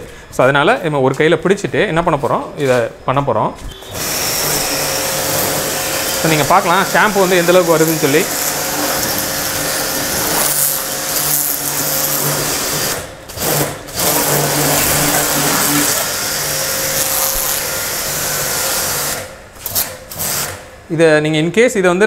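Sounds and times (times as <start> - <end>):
pressure washer motor hum: 3.8 - 19.3.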